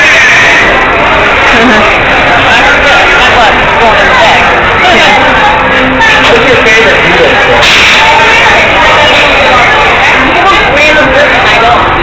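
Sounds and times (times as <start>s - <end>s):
distorted ride station noise: 0.0s - 12.0s
voices: 0.0s - 12.0s.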